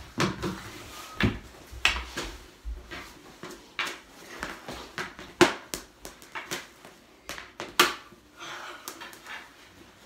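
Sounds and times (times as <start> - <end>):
hockey stick and pads knocking floor: 0.0 - 6.7.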